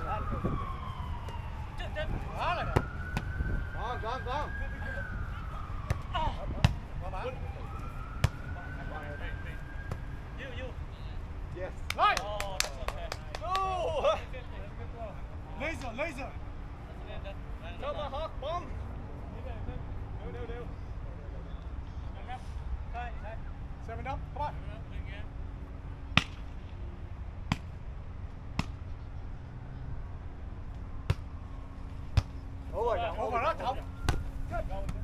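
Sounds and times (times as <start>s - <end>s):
volleyball slaps: 26.1s - 26.5s, 27.5s - 27.7s, 28.5s - 28.8s.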